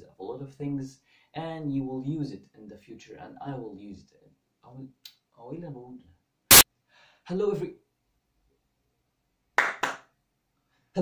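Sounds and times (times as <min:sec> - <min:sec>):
hand claps: 0:09.6 - 0:10.1.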